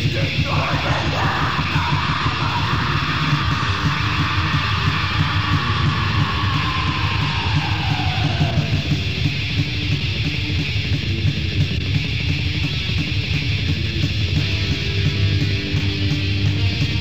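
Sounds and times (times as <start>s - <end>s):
distorted guitars: 0.0s - 17.0s
fast dense drumming: 0.0s - 17.0s
metal band playing: 0.0s - 17.0s.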